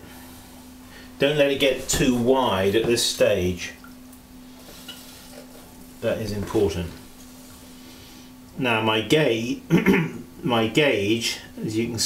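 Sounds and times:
potter's wheel humming: 0.0s - 9.7s.

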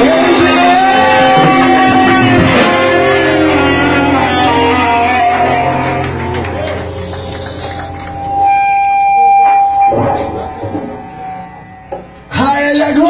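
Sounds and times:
guitar-led band music: 0.0s - 13.0s.

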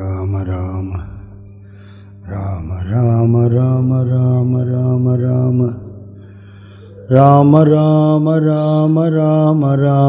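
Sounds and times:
man chanting: 0.0s - 1.5s, 2.2s - 5.9s, 6.8s - 10.0s.

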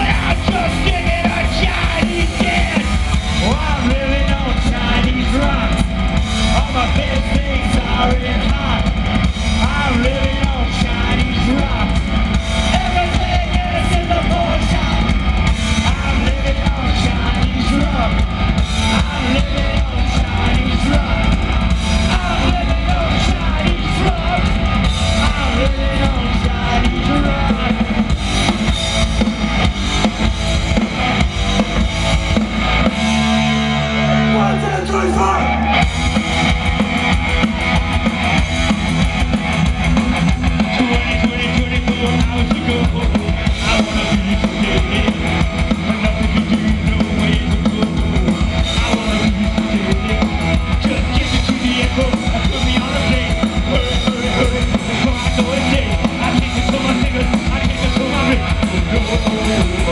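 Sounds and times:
punk rock band playing: 0.0s - 59.9s.

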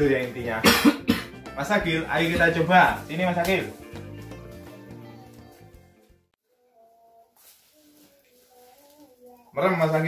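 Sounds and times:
soft rustle: 6.6s - 9.6s.

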